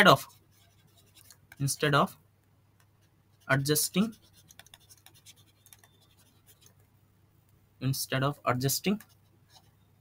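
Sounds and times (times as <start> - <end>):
stylus scratching on tablet: 0.0 - 2.0, 2.8 - 6.8, 8.7 - 9.9.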